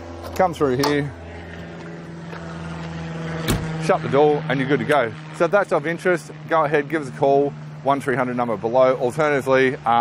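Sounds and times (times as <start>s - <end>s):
door swinging shut with a thud: 3.5s - 3.7s.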